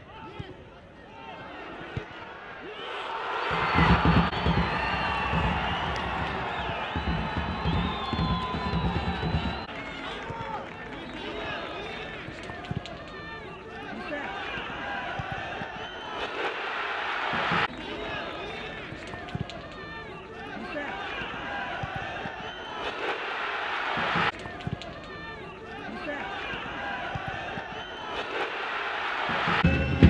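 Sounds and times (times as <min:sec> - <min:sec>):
footballers shouting: 0:00.0 - 0:30.0
stadium crowd noise: 0:00.0 - 0:30.0
ball-kick thuds: 0:03.5 - 0:09.7.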